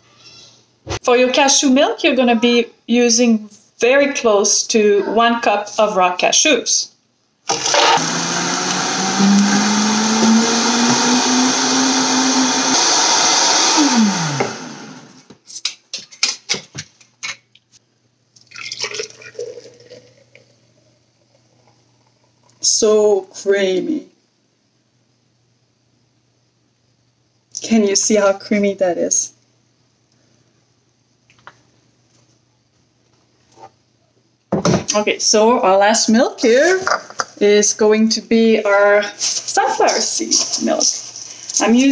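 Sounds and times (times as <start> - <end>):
woman speaking: 1.0 - 6.9, 22.6 - 24.1, 27.6 - 29.4, 34.9 - 41.9
blender motor whirring: 7.5 - 15.2.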